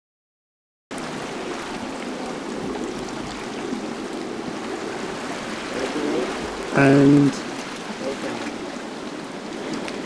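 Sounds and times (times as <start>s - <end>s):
sea surf on the shore: 0.9s - 10.0s.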